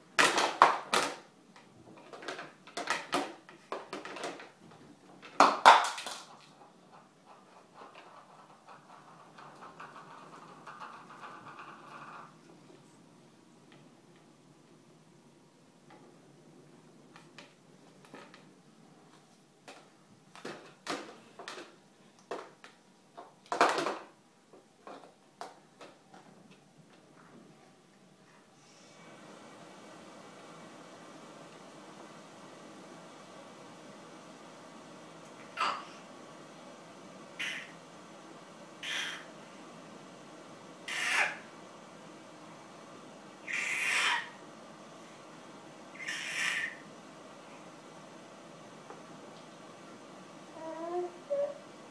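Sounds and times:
plastic toys clattering on tray: 0:02.0 - 0:04.6, 0:20.4 - 0:24.1
baby squealing into plastic bowl: 0:40.9 - 0:41.4, 0:43.5 - 0:44.4, 0:46.0 - 0:46.8.

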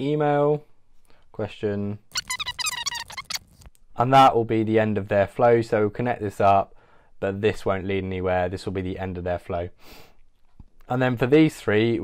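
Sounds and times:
sped-up chattering voice: 0:02.2 - 0:03.4.

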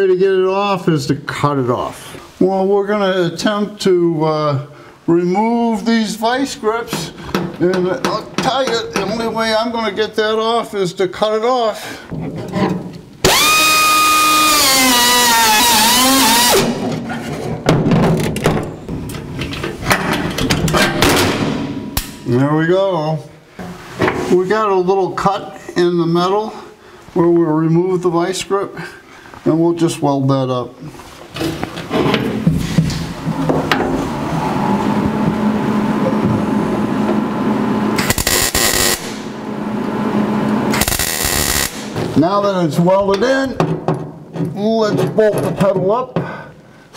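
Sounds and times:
metal clanks and knocks: 0:07.0 - 0:09.3, 0:12.1 - 0:13.1, 0:16.8 - 0:22.1, 0:43.1 - 0:46.2
cutoff tool high whine: 0:13.2 - 0:16.8, 0:37.8 - 0:42.0
welder arc crackling: 0:38.0 - 0:39.4, 0:40.7 - 0:42.0.

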